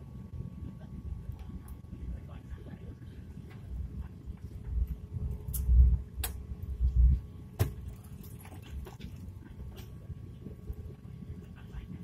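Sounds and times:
airliner cabin rumble: 0.0 - 12.0.

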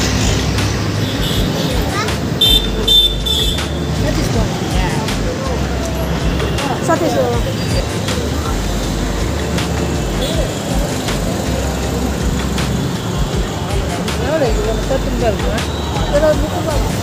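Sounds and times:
indistinct voices: 0.0 - 17.0.

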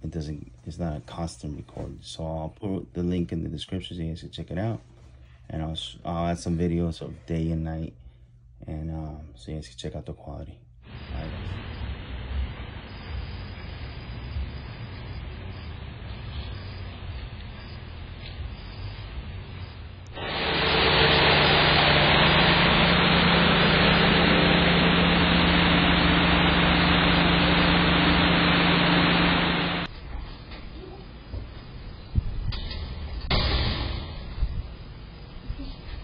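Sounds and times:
loud hiss: 10.9 - 17.1, 18.9 - 29.9
car engine humming: 20.1 - 29.9.

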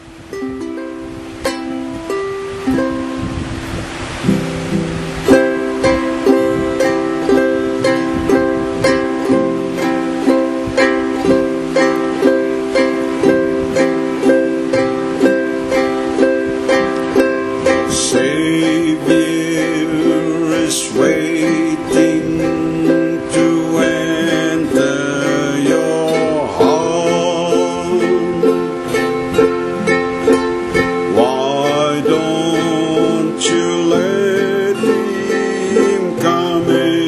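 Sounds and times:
ukulele strumming chords: 0.0 - 37.0.

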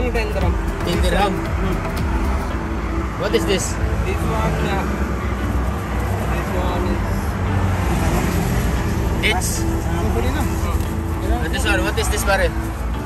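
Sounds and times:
road traffic rumble: 0.0 - 13.0.

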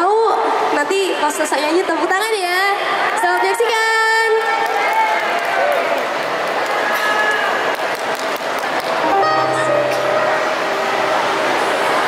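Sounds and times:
crowd noise in echoing hall: 0.0 - 12.0.

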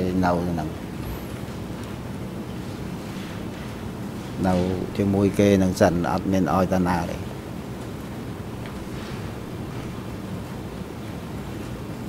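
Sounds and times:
room tone hum and hiss: 0.0 - 12.0.

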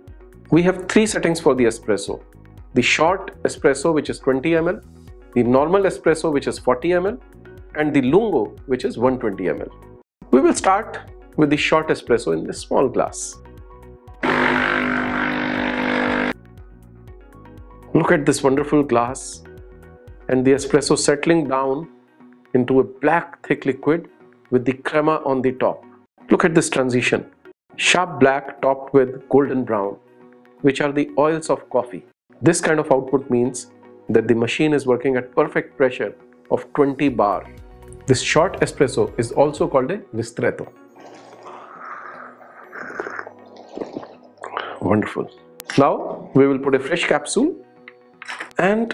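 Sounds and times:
soft music with a beat: 0.0 - 14.3, 16.4 - 22.6, 32.3 - 40.9
espresso machine pump buzzing: 14.2 - 16.4
slurping sips of coffee: 40.9 - 44.8.

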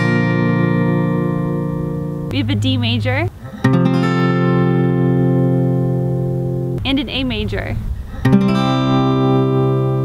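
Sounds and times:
acoustic guitar chord ringing: 0.0 - 7.2, 8.2 - 10.0.

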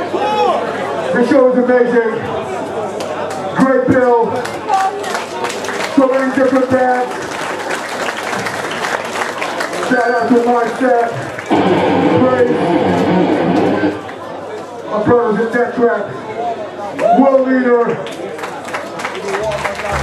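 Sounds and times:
people clapping: 3.0 - 3.6, 4.2 - 14.7, 18.0 - 20.0
amplified guitar: 11.5 - 14.1
crowd shouting: 11.5 - 14.2.

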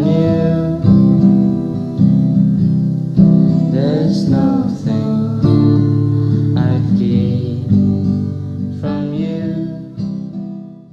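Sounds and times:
acoustic guitar strumming: 0.0 - 10.9.

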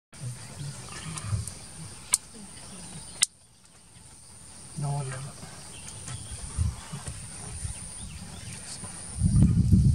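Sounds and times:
elephant rumbling low: 0.2 - 9.9.

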